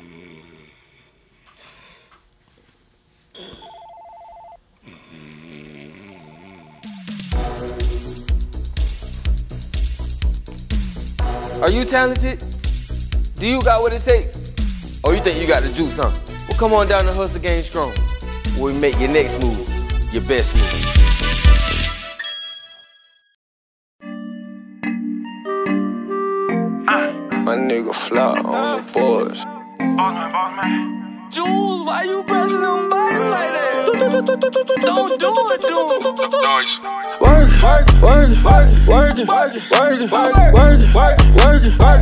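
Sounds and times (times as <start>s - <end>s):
telephone ringing: 3.4s - 4.6s
jingle music with bass hits: 7.1s - 22.8s, 37.2s - 42.0s
bell-like ding: 22.2s - 23.3s.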